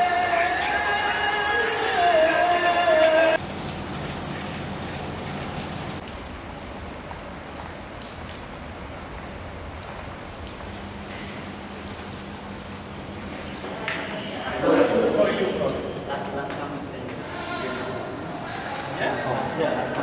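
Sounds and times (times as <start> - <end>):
rain falling: 0.0 - 20.0.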